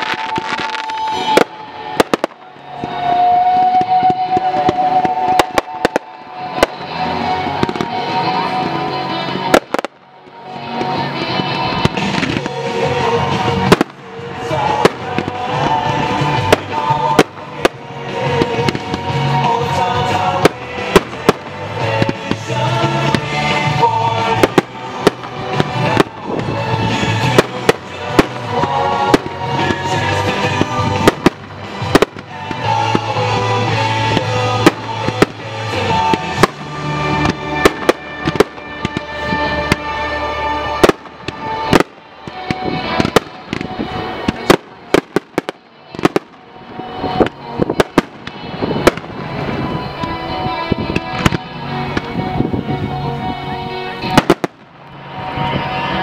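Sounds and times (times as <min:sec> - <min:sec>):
fireworks bangs and crackles: 0:00.0 - 0:56.0
music: 0:00.0 - 0:56.0.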